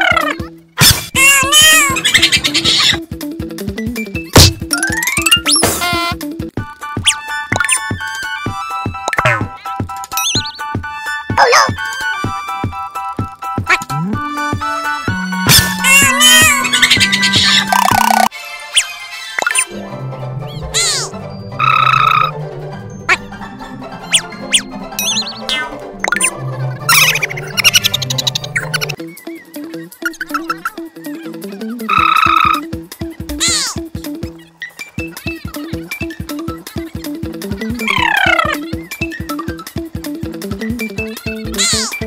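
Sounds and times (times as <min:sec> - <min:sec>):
cat-like meow sound effect: 0:01.2 - 0:02.0, 0:15.5 - 0:16.7
background music with beat: 0:02.6 - 0:17.8, 0:25.8 - 0:34.4, 0:35.0 - 0:41.7.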